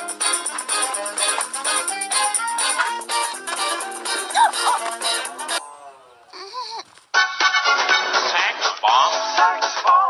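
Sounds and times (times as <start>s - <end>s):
song with vocals: 8.1s - 10.0s.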